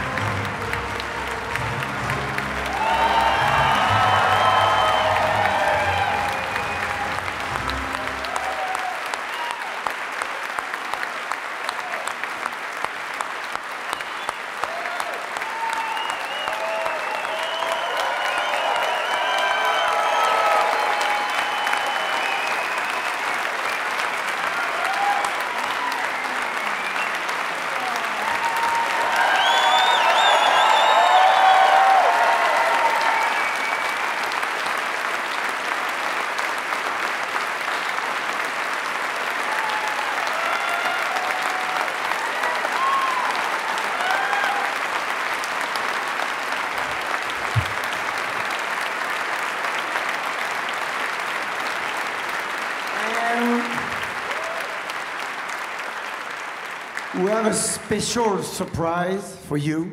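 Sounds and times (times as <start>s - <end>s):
audience applauding: 0.0s - 59.2s.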